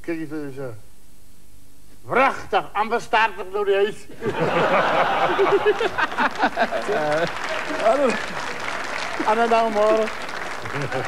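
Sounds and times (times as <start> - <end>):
man laughing: 4.2 - 8.4, 9.2 - 9.6, 10.6 - 11.0
audience applauding: 4.4 - 11.0.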